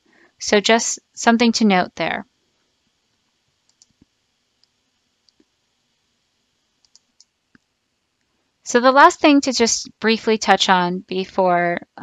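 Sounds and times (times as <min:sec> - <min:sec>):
computer mouse clicks: 0:03.6 - 0:05.5, 0:06.8 - 0:07.7.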